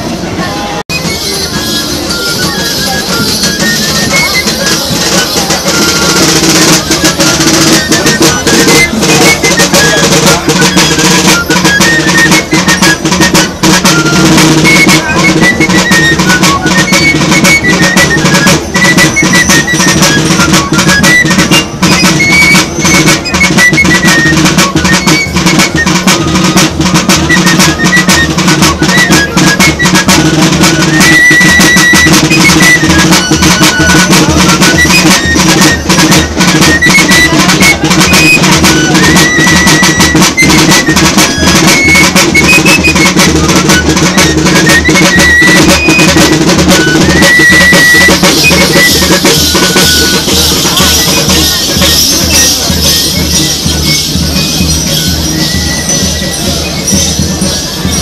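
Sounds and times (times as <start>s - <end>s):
clarinet melody: 0.1s - 58.0s
snare drum beat: 0.9s - 58.0s.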